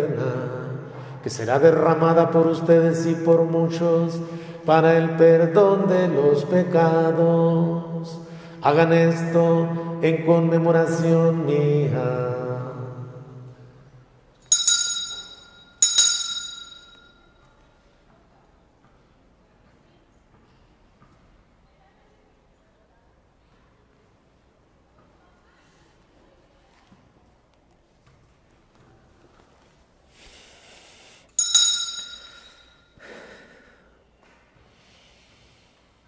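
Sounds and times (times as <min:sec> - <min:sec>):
altar bells ringing: 0:14.5 - 0:17.4, 0:31.4 - 0:33.0.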